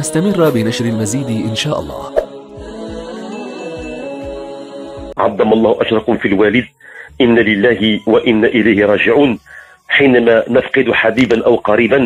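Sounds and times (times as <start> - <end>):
chant-like held chord: 0.0 - 9.4.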